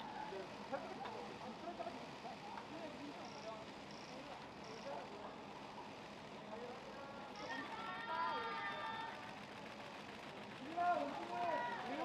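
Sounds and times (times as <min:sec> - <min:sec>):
outdoor murmur: 0:00.0 - 0:12.0.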